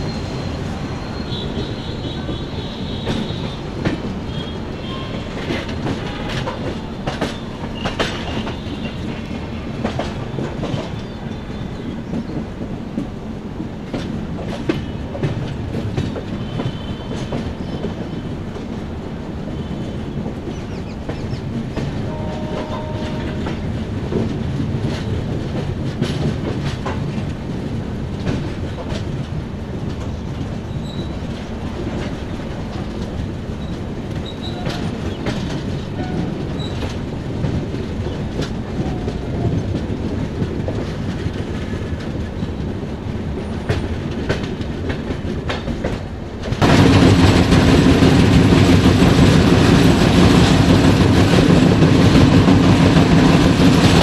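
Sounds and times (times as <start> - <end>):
train wheels clacking on rails: 0.0 - 54.0.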